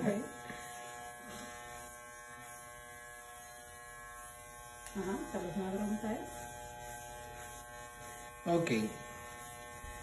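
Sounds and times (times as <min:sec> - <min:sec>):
electric hair clippers buzzing: 0:00.0 - 0:10.0.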